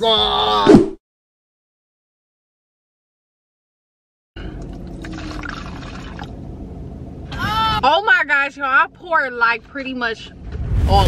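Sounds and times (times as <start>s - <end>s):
liquid pouring into a cup: 4.4s - 6.4s
low hum inside car: 4.4s - 11.0s
woman's high exclamation: 7.3s - 7.9s.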